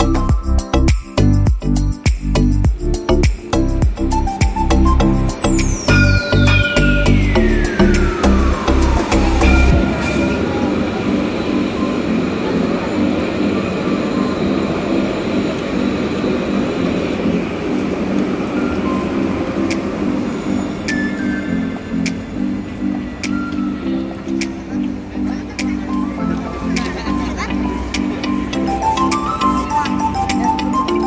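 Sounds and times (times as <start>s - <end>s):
background music with repeating chords: 0.0s - 9.9s
heavy bass: 0.0s - 11.1s
falling sweep: 5.7s - 13.8s.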